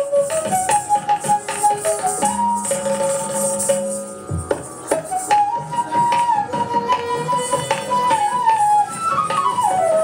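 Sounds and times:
flute melody: 0:00.0 - 0:10.0
percussion strokes: 0:00.0 - 0:10.0.

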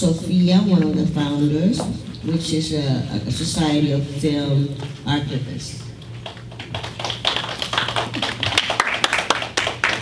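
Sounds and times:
small group applauding: 0:06.2 - 0:10.0.

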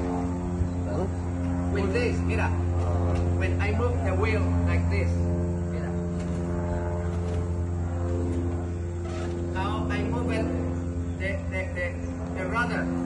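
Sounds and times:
low machine hum: 0:00.0 - 0:13.0
voices talking: 0:00.5 - 0:07.7, 0:08.4 - 0:13.0.

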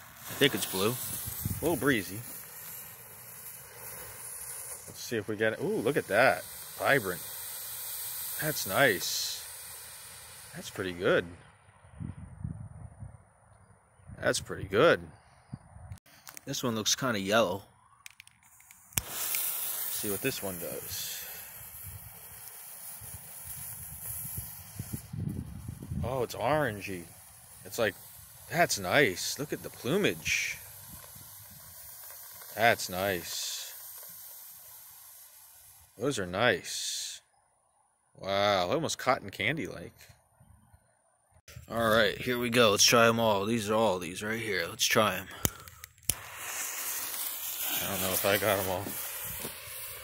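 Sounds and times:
fuse fizzing: 0:00.0 - 0:11.2, 0:18.1 - 0:36.3, 0:43.3 - 0:50.0
smoke ball hissing: 0:00.0 - 0:11.9, 0:17.8 - 0:37.4, 0:41.6 - 0:50.0
wind rumble on microphone: 0:01.0 - 0:01.8, 0:11.8 - 0:13.3, 0:14.0 - 0:16.0, 0:23.0 - 0:26.4.

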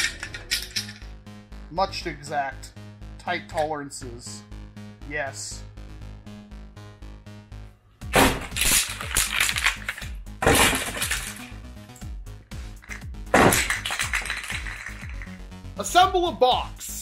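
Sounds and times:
plastic pipes clattering on concrete: 0:00.0 - 0:01.0, 0:08.6 - 0:11.6, 0:12.8 - 0:15.4.

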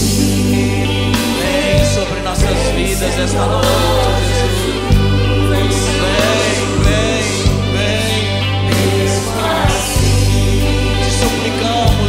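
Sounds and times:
choir singing over sustained chords: 0:00.0 - 0:12.0.

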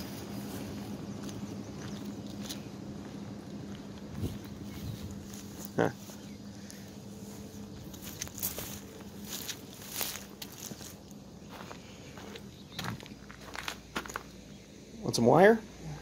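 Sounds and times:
footsteps through long grass: 0:00.0 - 0:14.5
footsteps on gritty concrete: 0:07.3 - 0:14.4.

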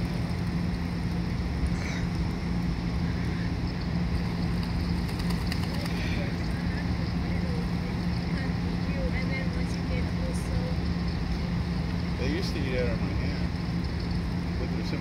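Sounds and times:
constant hum: 0:00.0 - 0:15.0
steady low rumble: 0:00.0 - 0:15.0
ducks splashing in water: 0:04.3 - 0:06.2.

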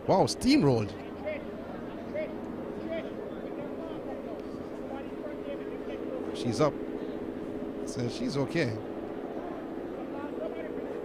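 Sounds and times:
steady low hum: 0:00.0 - 0:11.0
faint distant voices: 0:00.1 - 0:11.0.

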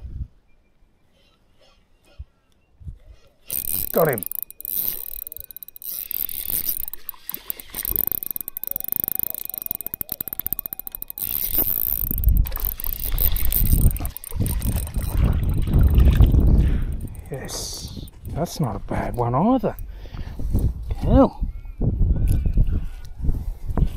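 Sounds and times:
fishing reel gears clicking: 0:03.4 - 0:19.9
low rumble on microphone: 0:12.2 - 0:19.1.

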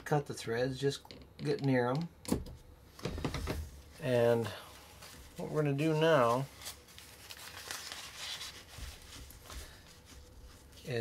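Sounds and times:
fabric rustling and crinkling: 0:03.0 - 0:11.0.

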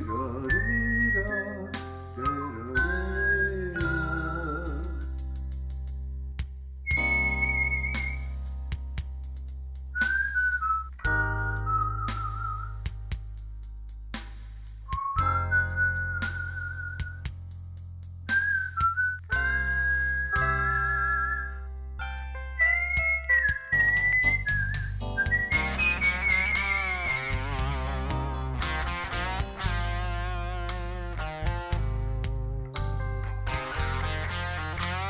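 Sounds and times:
person whistling a melody: 0:00.0 - 0:05.2, 0:06.9 - 0:08.4, 0:10.0 - 0:12.9, 0:14.9 - 0:17.4, 0:18.3 - 0:21.6, 0:22.6 - 0:27.7
backing track: 0:00.0 - 0:06.0, 0:06.9 - 0:35.0.

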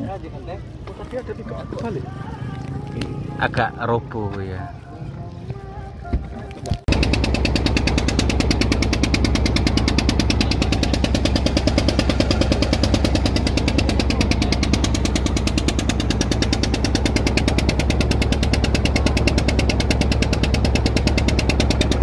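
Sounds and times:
motorboat engine chugging: 0:06.9 - 0:22.0.

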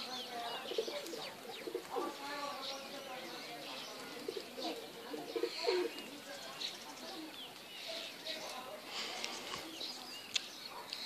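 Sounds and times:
small birds chirping: 0:00.0 - 0:11.0
pigeons cooing: 0:00.2 - 0:02.2, 0:04.0 - 0:06.1.

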